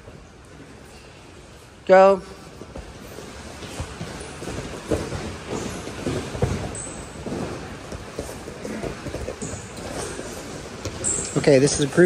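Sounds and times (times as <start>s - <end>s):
scuffling and thuds on mats: 2.4s - 11.2s.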